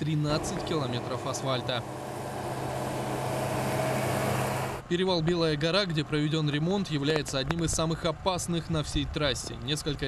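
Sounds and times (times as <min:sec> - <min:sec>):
vehicle engine and tyre noise: 0:00.0 - 0:08.1.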